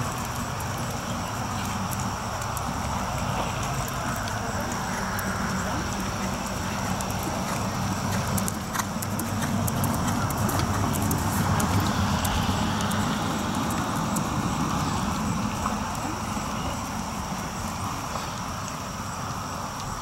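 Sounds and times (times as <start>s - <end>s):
open-air rumble and hiss: 0.0s - 20.0s
horse hoofbeats on sand: 3.5s - 15.8s.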